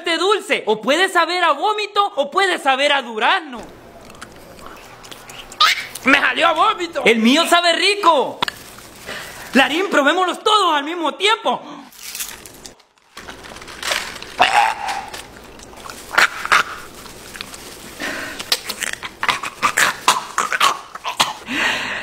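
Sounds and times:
men gagging and retching: 14.2 - 21.5.

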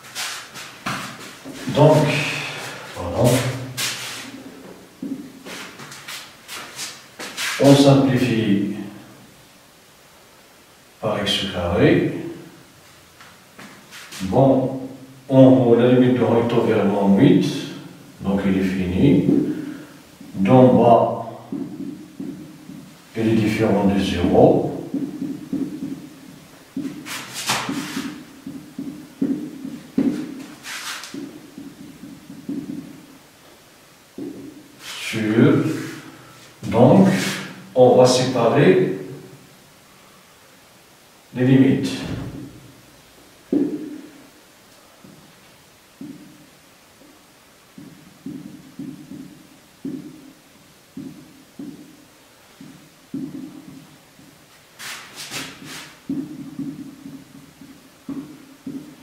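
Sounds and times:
marker tapping on a whiteboard: 4.6 - 5.9, 19.2 - 19.6, 21.5 - 22.9, 24.8 - 26.1, 26.7 - 33.1, 34.2 - 34.6, 43.5 - 44.1, 46.0 - 46.4, 47.7 - 52.0, 52.6 - 54.4, 55.2 - 59.0
marker writing on a whiteboard: 21.5 - 33.2, 34.2 - 36.0, 46.0 - 46.4, 47.7 - 59.0.

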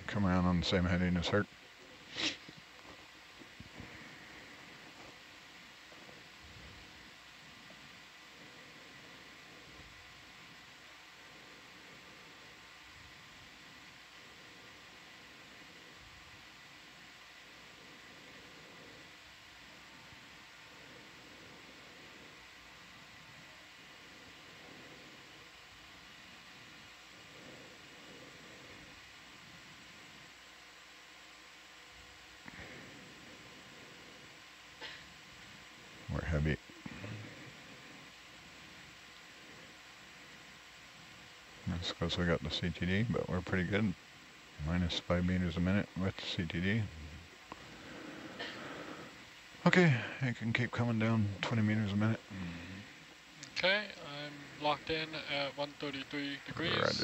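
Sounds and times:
faint hum tones: 0.0 - 57.0
faint steady hiss: 0.0 - 57.0.

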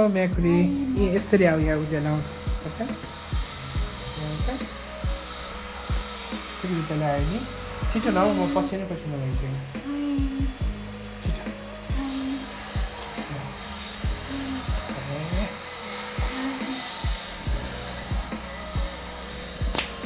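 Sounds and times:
low held melody: 0.0 - 20.0
deep thudding beat: 14.0 - 15.5.

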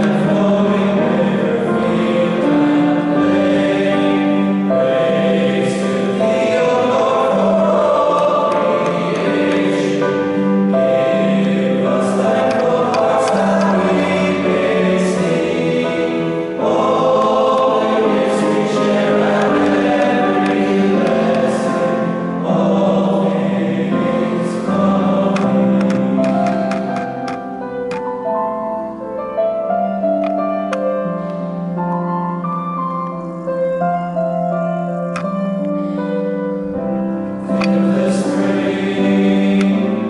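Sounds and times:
choir singing in parts: 0.0 - 28.3, 36.8 - 40.0.

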